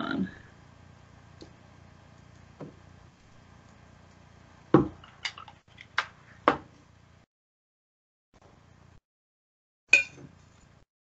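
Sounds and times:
faint steady hum: 0:00.0 - 0:07.2.

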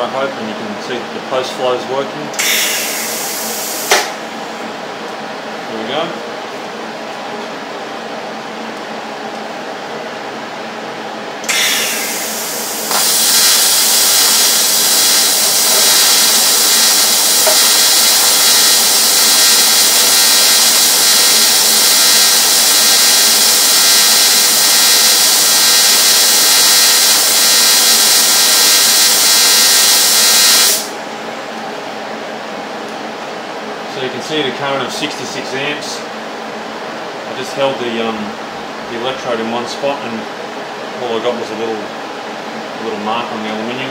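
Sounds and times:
welding arc buzzing: 0:02.4 - 0:04.3, 0:11.4 - 0:31.0.

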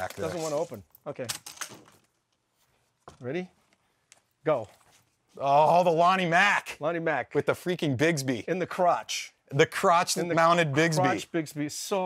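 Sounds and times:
man speaking: 0:05.4 - 0:12.0.

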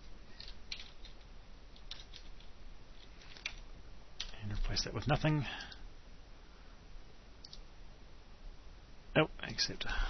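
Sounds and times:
faint steady hiss: 0:00.0 - 0:10.0
computer mouse click: 0:07.4 - 0:07.7.

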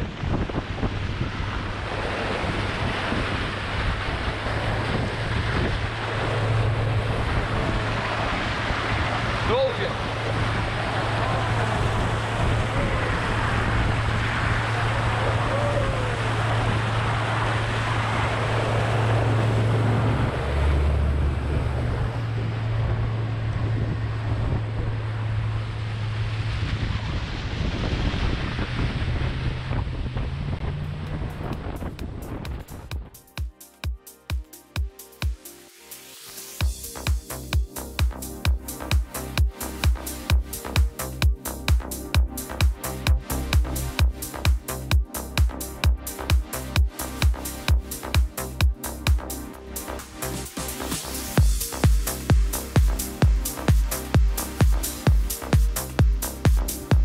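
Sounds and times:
motorboat engine drone: 0:00.0 - 0:33.3, 0:33.9 - 0:57.0
wind buffeting microphone: 0:00.0 - 0:33.3
water rushing along hull: 0:00.0 - 0:57.0.

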